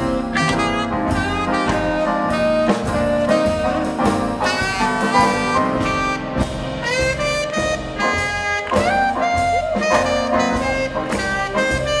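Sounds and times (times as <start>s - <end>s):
jazz band playing swing: 0.0s - 12.0s
saxophone: 0.1s - 12.0s.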